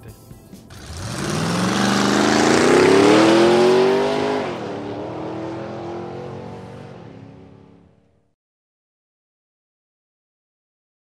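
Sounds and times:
car engine accelerating hard: 0.7 - 8.2.

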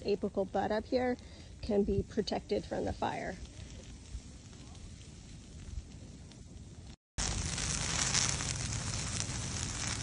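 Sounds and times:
fire crackling through dry leaves: 0.0 - 10.0.

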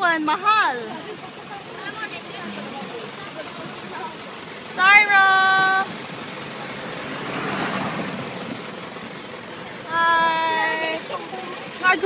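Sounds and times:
motor vehicle rushing: 0.1 - 12.0.

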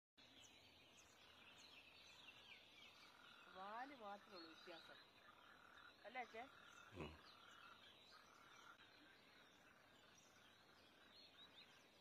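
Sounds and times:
small birds chirping: 0.2 - 12.0.

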